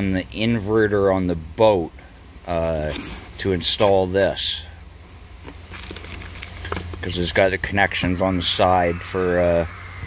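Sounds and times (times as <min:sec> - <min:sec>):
steady low hum: 0:00.0 - 0:10.0
plastic bags crinkling: 0:05.6 - 0:07.0.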